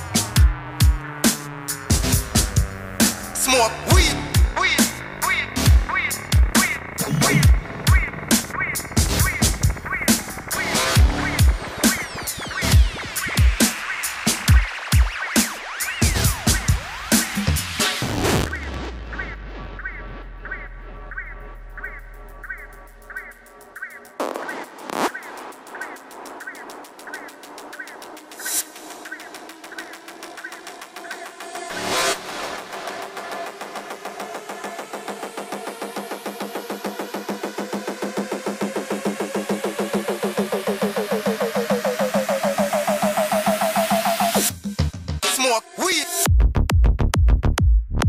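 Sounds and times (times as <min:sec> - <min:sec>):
high synth blip: 0:04.0 - 0:13.4
low bass drone: 0:18.0 - 0:23.8.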